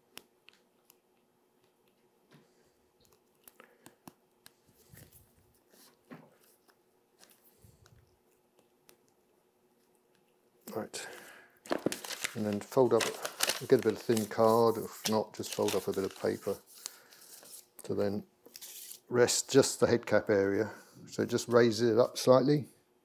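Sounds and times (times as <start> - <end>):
paper rustling: 11.7 - 17.7, 18.5 - 19.0.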